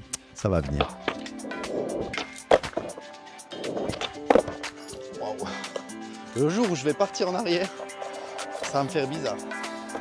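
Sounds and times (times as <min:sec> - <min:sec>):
background music: 0:00.0 - 0:10.0
skateboard wheels rolling on concrete: 0:00.8 - 0:04.8
skateboard clacking on ground: 0:02.0 - 0:03.0, 0:03.7 - 0:04.8.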